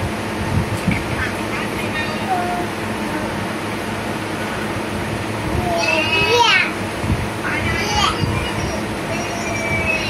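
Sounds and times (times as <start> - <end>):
room fan whirring: 0.0 - 10.0
young child's voice: 1.0 - 3.4, 5.4 - 6.8, 7.4 - 10.0.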